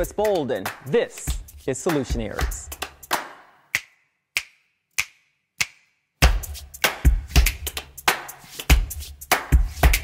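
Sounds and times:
clap-like percussion hits: 0.0s - 10.0s.

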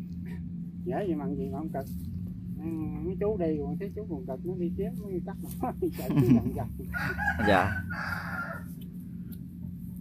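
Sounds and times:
distant combine harvester drone: 0.0s - 10.0s.

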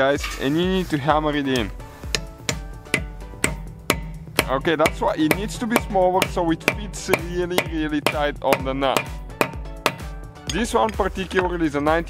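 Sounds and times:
hammer striking metal socket: 1.6s - 11.0s.

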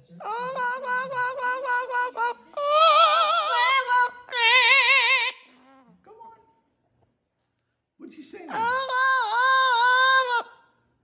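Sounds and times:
parrot singing long note: 0.2s - 5.4s, 8.6s - 10.6s.

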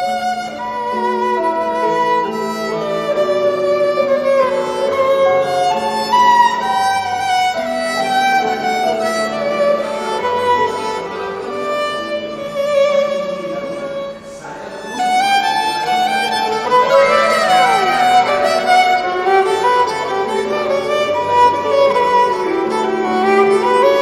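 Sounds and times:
violin slow bowed melody: 0.0s - 24.0s.

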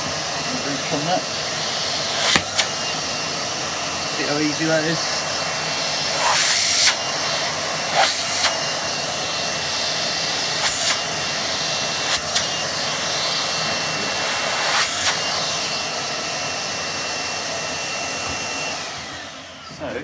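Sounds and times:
vacuum cleaner whining: 0.0s - 20.0s.

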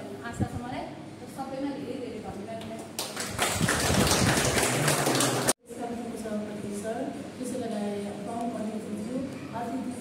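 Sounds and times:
people applauding: 3.0s - 5.6s.

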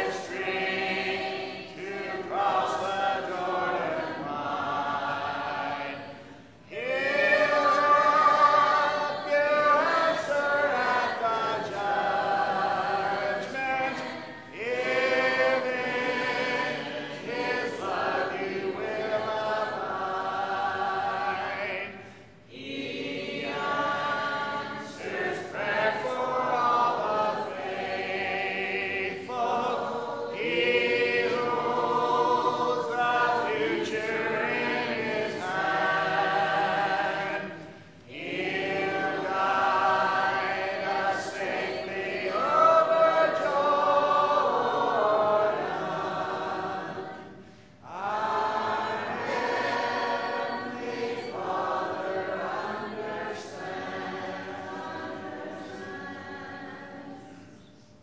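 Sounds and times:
congregation singing a hymn: 0.0s - 58.0s.

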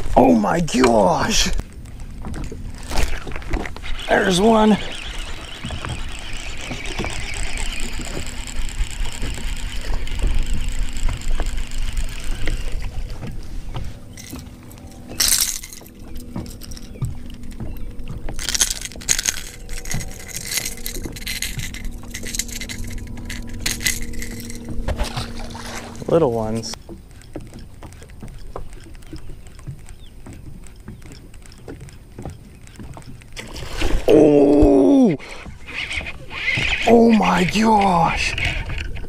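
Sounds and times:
faint steady hum: 0.6s - 26.8s
handling noises: 7.9s - 32.3s
tackle clinking: 14.0s - 26.8s.

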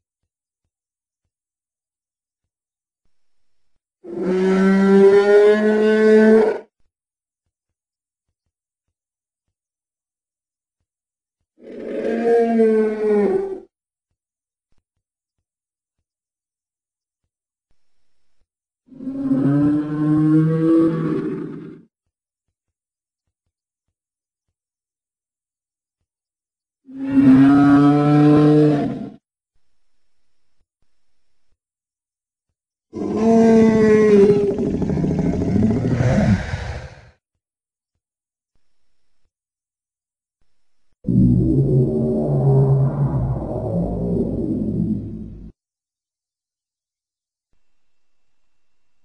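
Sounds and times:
dinosaur roar: 4.1s - 6.6s, 11.6s - 13.7s, 18.9s - 21.8s, 26.9s - 29.2s, 33.0s - 37.1s, 41.1s - 45.5s.

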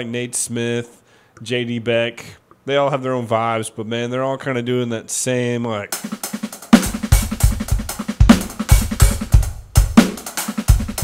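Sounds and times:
electronic drum kit groove: 5.9s - 11.0s.

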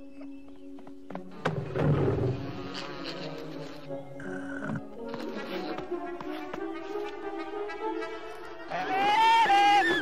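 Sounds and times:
orchestral film score: 1.2s - 10.0s
short insect buzz: 2.5s - 5.7s.

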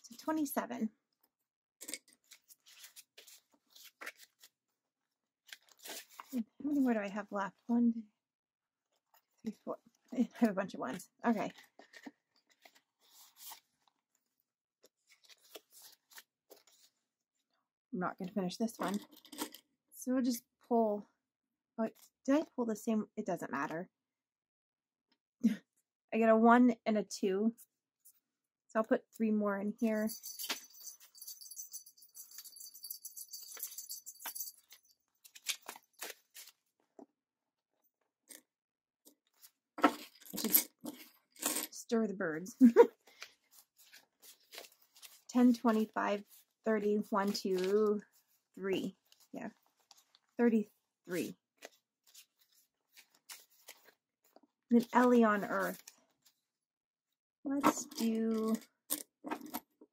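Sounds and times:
paper bills rustling and crinkling: 2.2s - 4.6s, 5.4s - 6.8s, 15.0s - 17.0s, 34.7s - 36.7s, 43.0s - 46.6s, 47.2s - 48.4s, 51.6s - 54.4s.

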